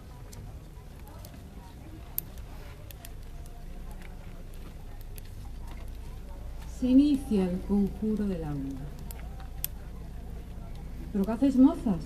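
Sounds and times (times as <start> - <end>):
bonfire crackling and popping: 0.0 - 12.0
murmur of voices: 0.0 - 12.0.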